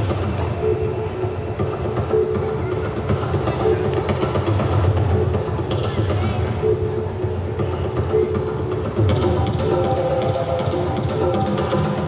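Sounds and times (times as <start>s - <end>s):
indoor arena din: 0.0s - 12.0s.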